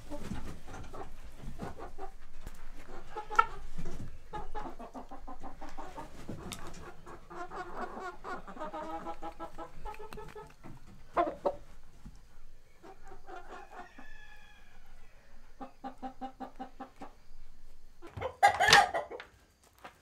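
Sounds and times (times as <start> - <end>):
chickens clucking: 0.0 - 19.4.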